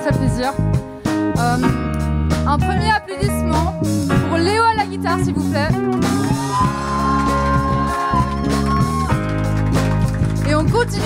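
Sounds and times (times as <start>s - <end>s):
pop band playing: 0.0s - 11.0s
person singing: 6.2s - 8.6s.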